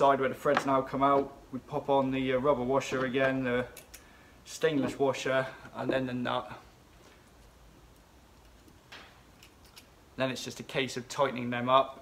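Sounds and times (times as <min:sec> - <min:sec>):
light clicks of washers and nut: 0:02.9 - 0:04.1, 0:07.2 - 0:10.0.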